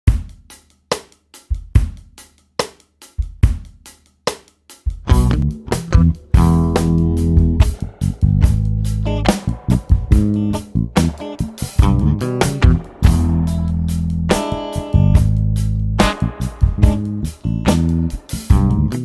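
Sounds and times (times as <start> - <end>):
jazz drums groove: 0.1 - 19.0
bass line: 5.1 - 19.0
pitched instruments: 5.1 - 19.0.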